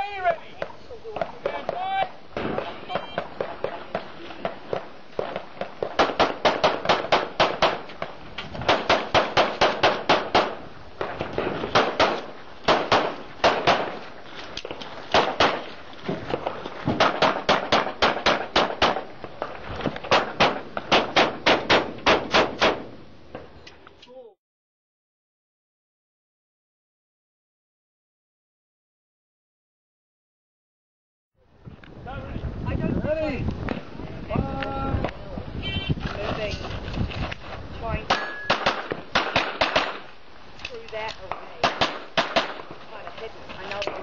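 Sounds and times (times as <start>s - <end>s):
handgun shots: 5.2s - 7.9s, 8.7s - 10.6s, 11.7s - 14.0s, 15.1s - 15.7s, 17.0s - 19.0s, 20.1s - 22.9s, 38.1s - 40.1s, 41.3s - 42.6s.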